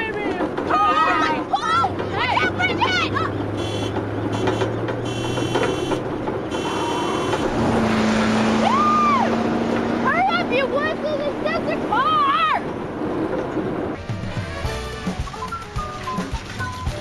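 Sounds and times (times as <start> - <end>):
women whooping and shouting: 0.7 - 3.3, 8.6 - 9.4
car driving past: 1.7 - 14.7.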